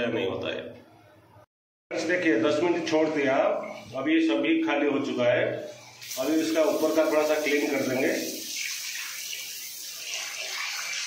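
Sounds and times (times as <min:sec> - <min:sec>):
water running down drain: 0:05.8 - 0:11.0
water splashing on tiled floor: 0:06.0 - 0:11.0.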